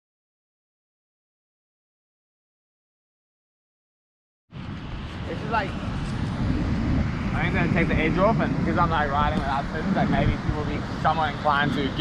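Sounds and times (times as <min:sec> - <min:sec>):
wind rumble on microphone: 0:04.5 - 0:12.0
man speaking: 0:05.3 - 0:05.8, 0:07.4 - 0:12.0.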